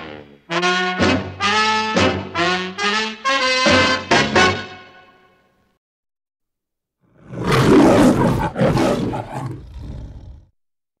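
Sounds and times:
lion roaring: 7.1 - 10.5.

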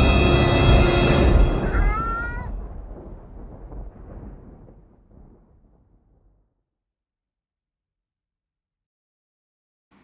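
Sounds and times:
low rumble: 0.5 - 6.1.

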